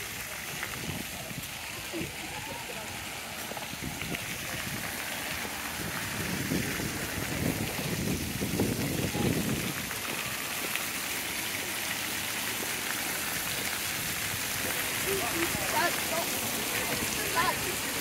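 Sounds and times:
fountain jets splashing: 0:00.0 - 0:18.0.

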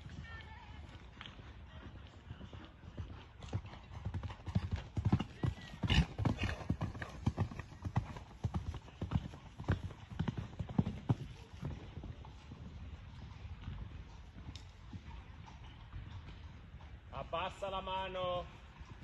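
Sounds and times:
horse hoofbeats cantering on sand: 0:00.0 - 0:19.0.

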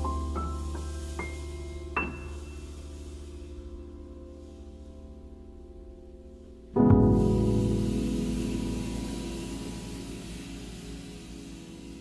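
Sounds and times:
jazz piano and bass chord: 0:00.0 - 0:12.0.

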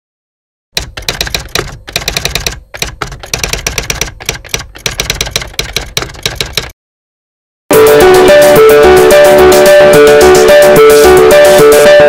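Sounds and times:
typewriter key strikes: 0:00.8 - 0:06.7.

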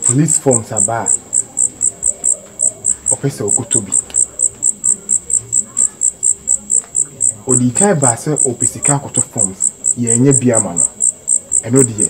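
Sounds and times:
cricket chirping: 0:00.0 - 0:12.0
voice murmuring: 0:00.0 - 0:12.0.

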